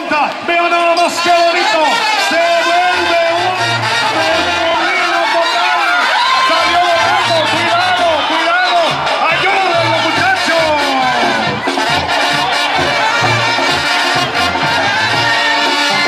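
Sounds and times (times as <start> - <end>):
brass band music: 0.0 - 16.0
crowd noise: 0.0 - 16.0.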